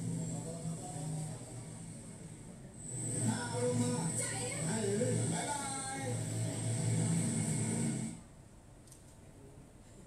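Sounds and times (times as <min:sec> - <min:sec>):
film soundtrack rumble over loudspeakers: 0:00.0 - 0:10.0.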